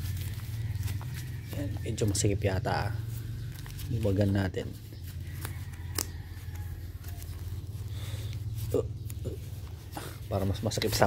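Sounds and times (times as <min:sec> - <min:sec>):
fabric glove rustling and scraping: 0:00.0 - 0:11.0
steady low hum: 0:00.0 - 0:11.0.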